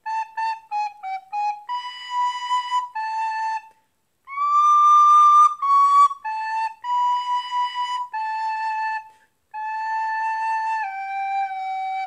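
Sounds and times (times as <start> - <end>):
recorder melody: 0.0 - 12.0.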